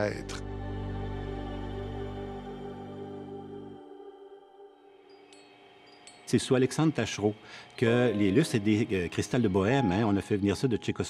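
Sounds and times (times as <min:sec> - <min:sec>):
soft ambient music: 0:00.0 - 0:11.0
faint high chime tinkles: 0:04.9 - 0:11.0.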